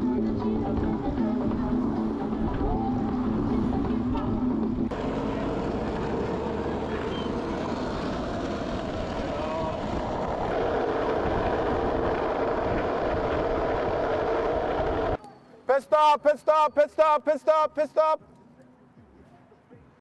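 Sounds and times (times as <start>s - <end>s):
road noise: 0.0s - 18.9s
wind on microphone: 8.0s - 15.2s.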